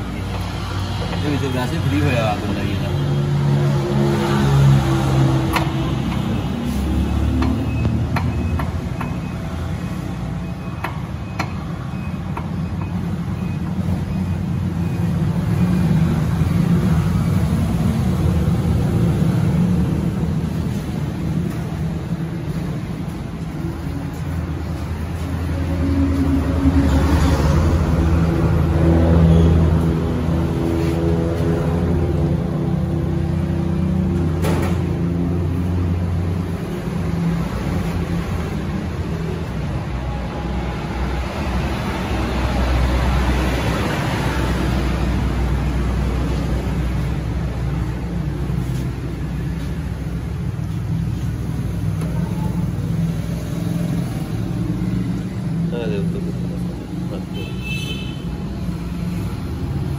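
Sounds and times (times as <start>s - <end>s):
vehicle engine rumble: 0.0s - 59.9s.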